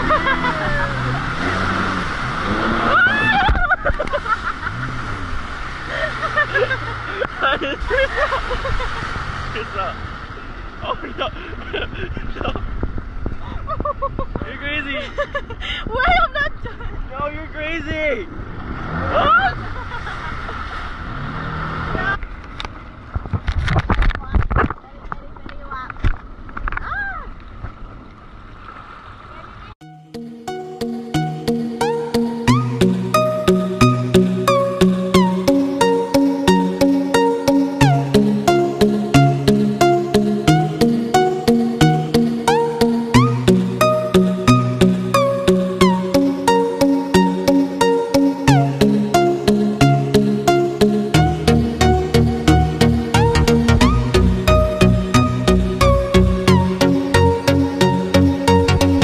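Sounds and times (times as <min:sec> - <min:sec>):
jet ski engine running: 0:00.0 - 0:10.8
rushing water spray: 0:00.1 - 0:10.8
wind noise: 0:11.2 - 0:17.1, 0:21.8 - 0:26.9.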